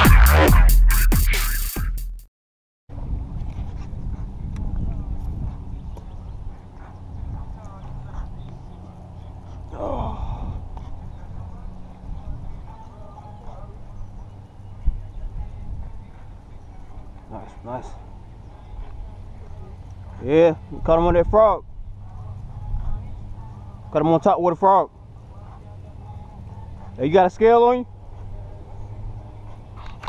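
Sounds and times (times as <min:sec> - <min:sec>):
wind rumble on microphone: 0:02.9 - 0:17.3, 0:17.9 - 0:24.0.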